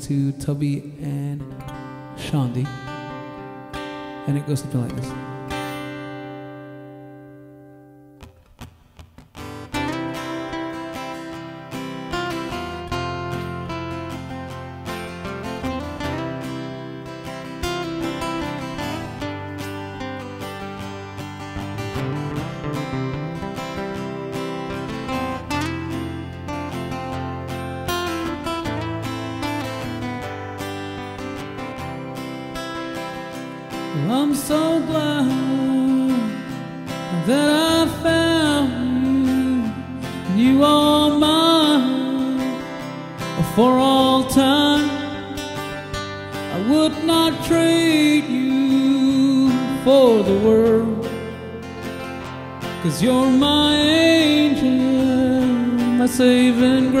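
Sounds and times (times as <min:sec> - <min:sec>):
acoustic guitar strumming and picking: 0:00.0 - 0:57.0.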